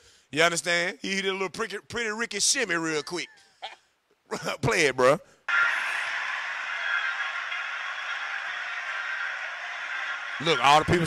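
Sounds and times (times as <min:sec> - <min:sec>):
crowd applauding: 0:05.5 - 0:11.0.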